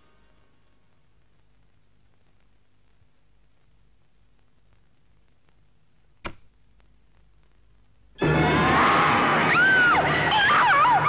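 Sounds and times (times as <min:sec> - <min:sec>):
quiet film soundtrack: 0:00.0 - 0:11.0.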